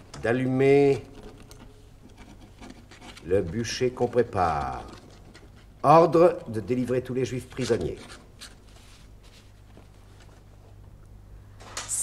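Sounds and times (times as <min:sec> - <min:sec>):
quill pen scratching on paper: 0:01.0 - 0:06.6, 0:07.3 - 0:08.9.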